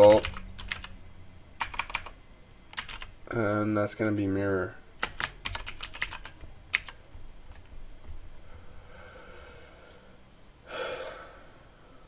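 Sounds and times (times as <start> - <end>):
person exhaling: 8.4 - 12.0.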